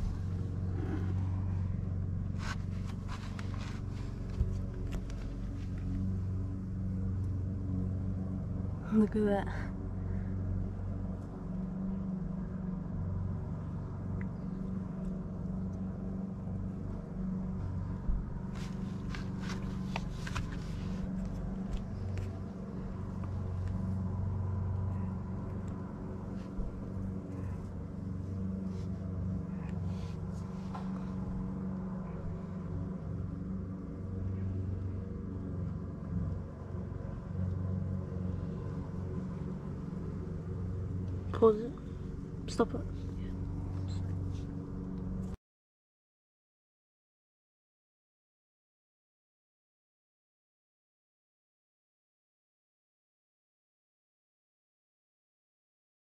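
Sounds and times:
machine humming: 0.0s - 45.2s.

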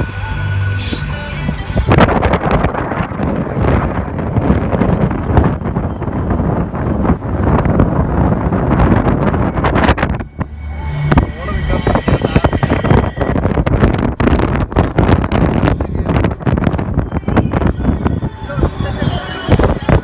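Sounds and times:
road noise: 0.0s - 20.0s
wind buffeting microphone: 0.0s - 20.0s.

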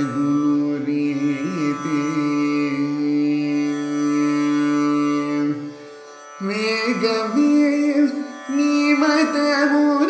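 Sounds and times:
man singing ornamented phrase: 0.0s - 5.7s, 6.4s - 10.0s
tanpura drone: 0.0s - 10.0s.

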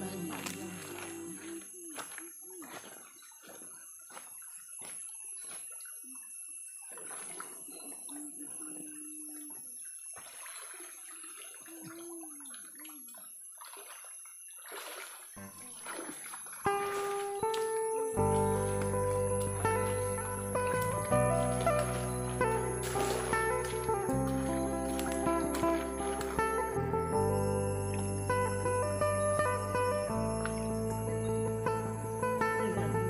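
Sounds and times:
music: 0.0s - 1.2s, 16.7s - 33.0s
faint voices: 0.0s - 2.8s
stream water splashing: 0.0s - 33.0s.

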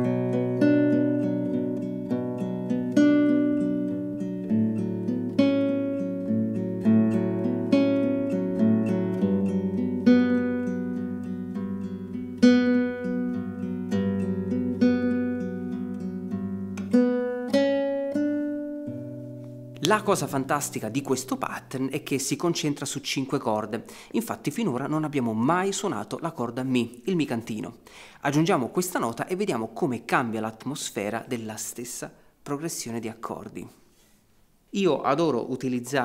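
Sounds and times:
fingerpicked classical guitar arpeggio: 0.0s - 27.6s.

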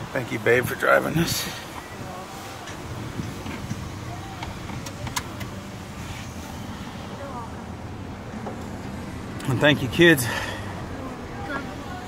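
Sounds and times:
car road and engine rumble: 0.0s - 12.0s.

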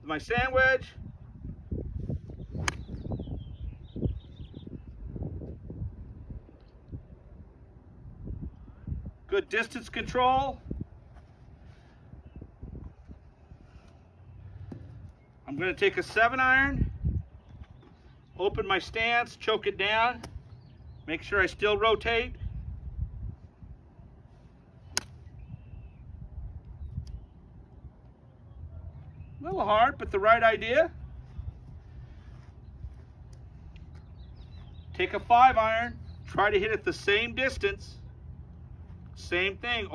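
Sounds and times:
wind rumble on microphone: 0.0s - 15.2s, 15.9s - 19.0s, 20.3s - 30.2s, 30.9s - 36.4s.

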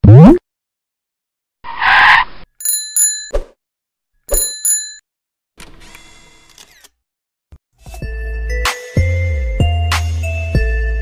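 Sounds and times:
bicycle bell ringing: 2.6s - 3.3s, 4.3s - 5.0s.

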